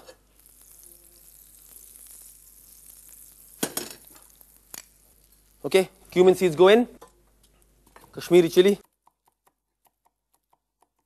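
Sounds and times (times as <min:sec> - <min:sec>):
butter sizzling in a pan: 0:00.0 - 0:06.4.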